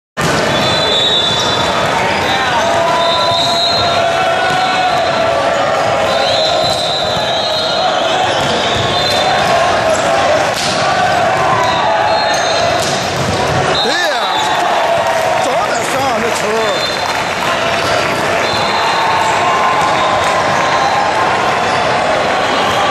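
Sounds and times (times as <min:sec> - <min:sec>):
crowd chatter and shouting: 0:00.2 - 0:22.9
volleyball strikes: 0:05.8 - 0:15.1.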